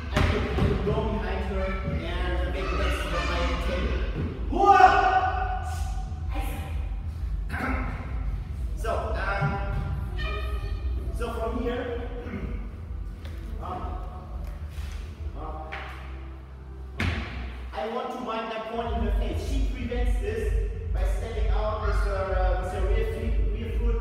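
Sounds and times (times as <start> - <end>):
steady low hum: 0.0 - 17.8, 18.8 - 24.0
people talking in echoing hall: 0.0 - 24.0.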